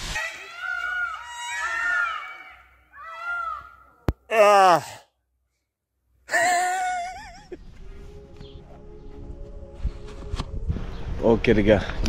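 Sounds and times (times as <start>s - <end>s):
peacocks calling: 0.1s - 3.8s.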